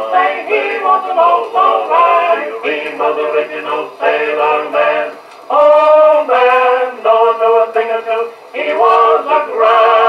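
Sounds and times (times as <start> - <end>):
male vocal quartet on phonograph: 0.0 - 10.0.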